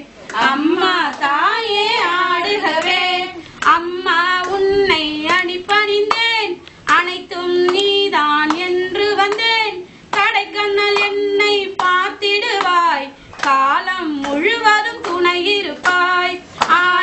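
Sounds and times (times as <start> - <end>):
women singing devotional song: 0.0 - 17.0
hand claps: 0.2 - 9.5, 10.1 - 17.0.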